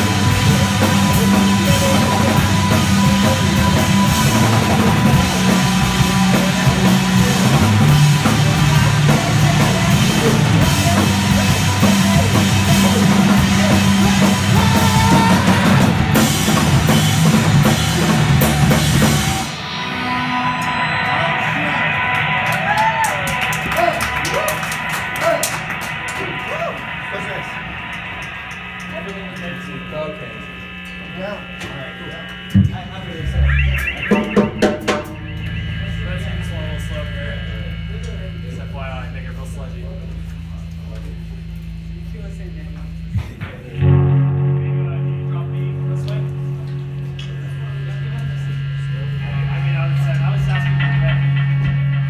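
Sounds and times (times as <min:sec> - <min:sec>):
electric guitar through amplifiers: 0:00.0 - 0:52.0
steady amplifier hum: 0:00.0 - 0:52.0
voices in the room: 0:20.5 - 0:52.0
faint wavering instrument sounds: 0:23.5 - 0:42.2, 0:43.8 - 0:52.0.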